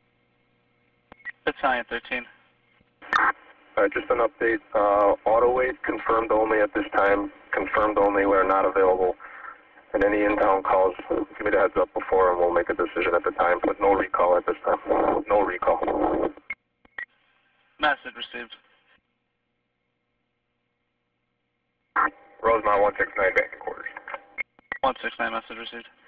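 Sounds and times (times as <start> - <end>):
person talking over radio: 3.2 - 16.4, 22.0 - 24.2.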